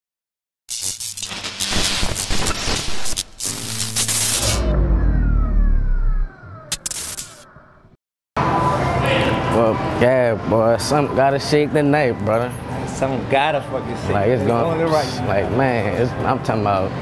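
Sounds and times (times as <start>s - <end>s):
static-like crackling: 0.7s - 4.7s
falling tones: 3.4s - 7.8s
deep boom: 4.2s - 6.7s
sharp click: 6.7s - 7.5s.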